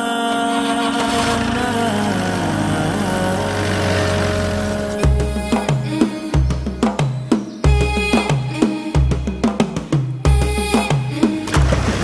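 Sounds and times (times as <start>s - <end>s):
background music held notes: 0.0s - 9.6s
car engine starting and rumbling: 0.5s - 5.6s.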